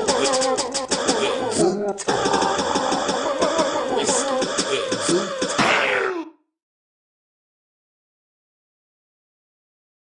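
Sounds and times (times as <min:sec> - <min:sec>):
person making mouth noises: 0:00.0 - 0:06.4.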